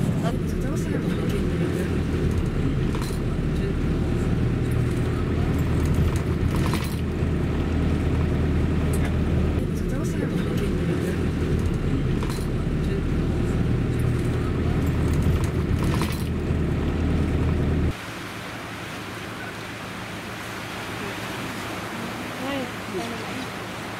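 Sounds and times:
low outdoor rumble: 0.0s - 23.9s.

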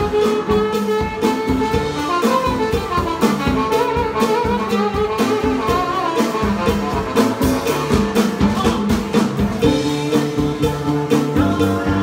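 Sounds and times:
drum kit beat: 0.0s - 12.0s
low bass line: 6.6s - 12.0s.

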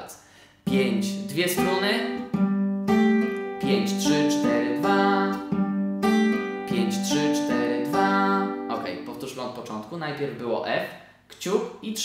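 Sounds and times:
fingerpicked acoustic guitar: 0.6s - 9.6s.

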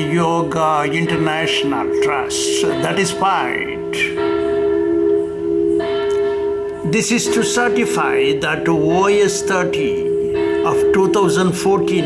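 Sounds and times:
bell-like ringing tones: 0.0s - 12.0s.

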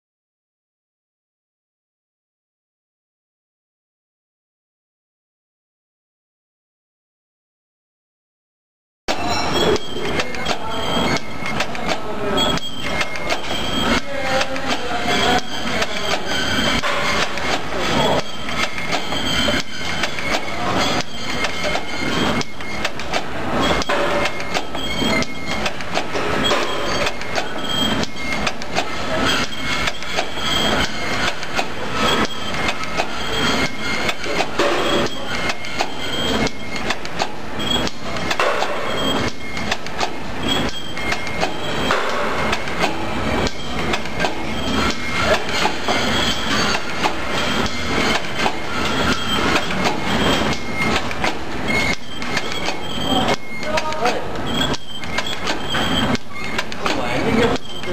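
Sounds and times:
machine clattering: 9.1s - 57.9s.

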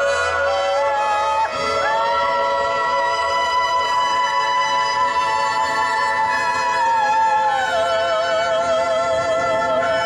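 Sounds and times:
woman singing into microphone: 0.0s - 10.0s.

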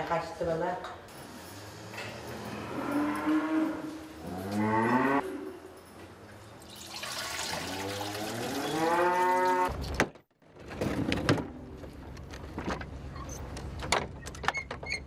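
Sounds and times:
cows mooing: 2.4s - 5.6s, 7.8s - 9.7s.

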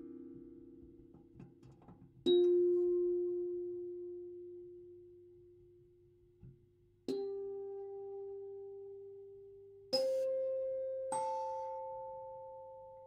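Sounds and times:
music box notes: 9.9s - 13.0s.

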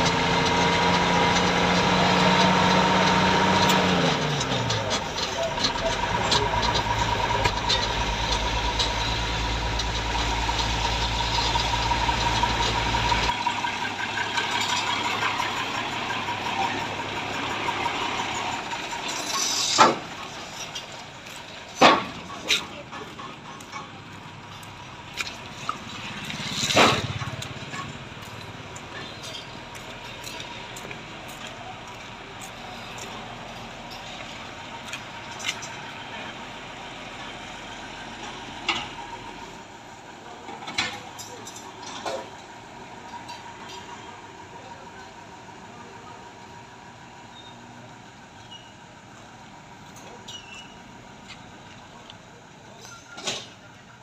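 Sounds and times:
heavy truck engines running: 0.0s - 54.0s
sharp metal clanks and knocks: 17.6s - 31.0s.

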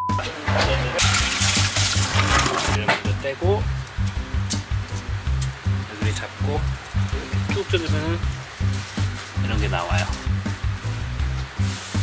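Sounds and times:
background music with bass beat: 0.0s - 12.0s
water pouring into a steel sink: 0.4s - 2.8s.

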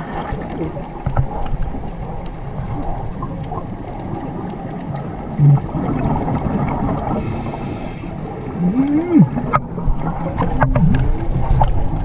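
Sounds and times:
faint clicks: 0.0s - 5.6s
muffled underwater rumble: 0.0s - 12.0s.

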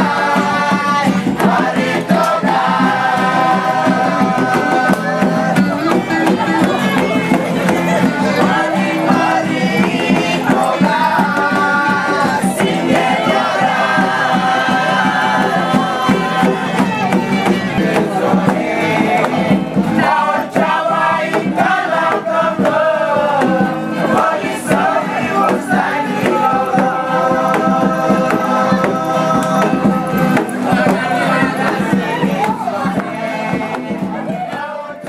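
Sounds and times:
group of voices singing: 0.0s - 35.0s.

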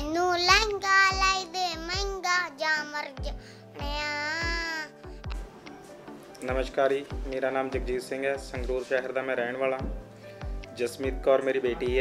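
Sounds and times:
backing track with deep beat: 5.0s - 8.8s, 9.8s - 11.2s.

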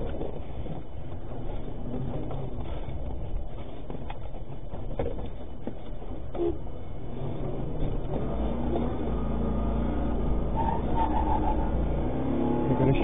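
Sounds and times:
engine and road rumble: 0.0s - 13.0s.

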